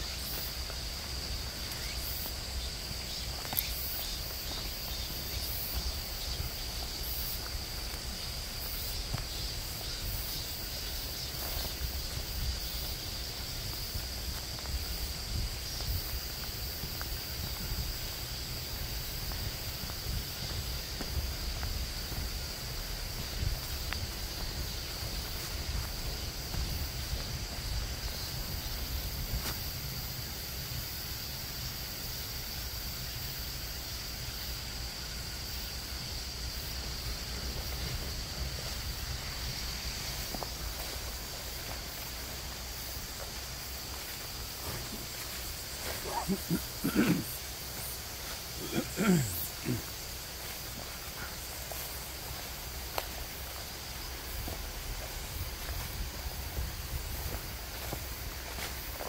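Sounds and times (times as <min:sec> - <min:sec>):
insects chorus: 0:00.0 - 0:59.0.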